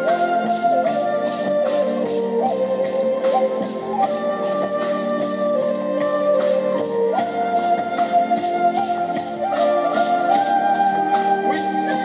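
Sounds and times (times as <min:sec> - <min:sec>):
flute melody: 0:00.0 - 0:12.0.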